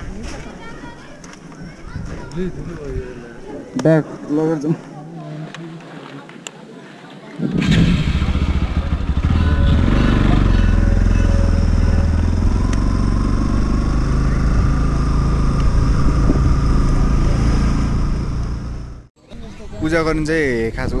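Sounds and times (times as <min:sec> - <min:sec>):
motorcycle engine running: 0:07.6 - 0:19.1.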